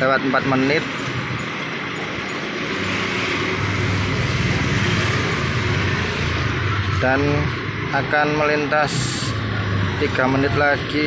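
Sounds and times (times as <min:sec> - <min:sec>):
scooter engines passing: 0:00.0 - 0:11.0
street traffic noise: 0:00.0 - 0:11.0.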